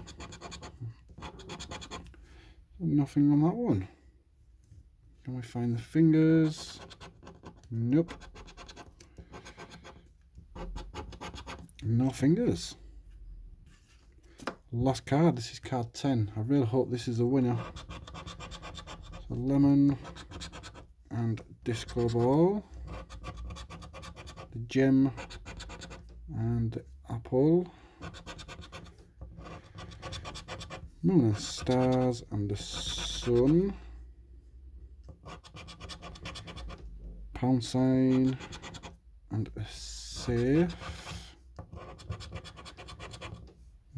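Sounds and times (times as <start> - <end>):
coin scratching scratch card: 0.0 - 2.1, 6.4 - 11.6, 17.5 - 20.9, 21.7 - 26.1, 28.0 - 33.6, 35.1 - 36.8, 38.1 - 39.0, 40.2 - 43.4.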